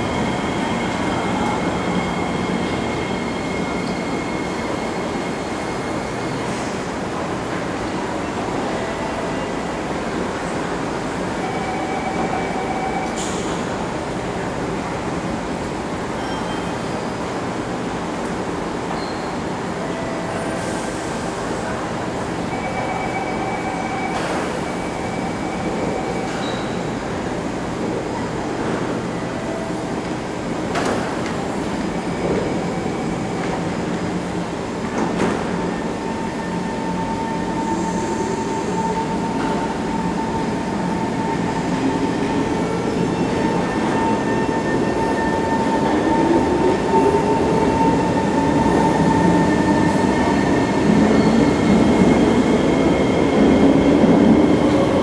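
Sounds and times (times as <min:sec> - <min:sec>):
train doors shutting: 0:00.1 - 0:15.1, 0:18.1 - 0:29.0, 0:29.9 - 0:55.0.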